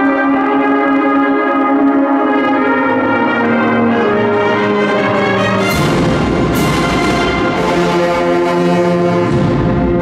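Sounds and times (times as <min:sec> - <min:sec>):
brass band holding a sustained chord: 0:00.0 - 0:10.0.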